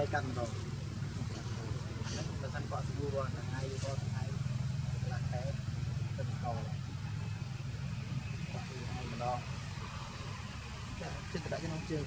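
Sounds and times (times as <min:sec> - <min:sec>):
faint voices talking: 0:00.0 - 0:12.0
steady low rumble: 0:00.0 - 0:12.0.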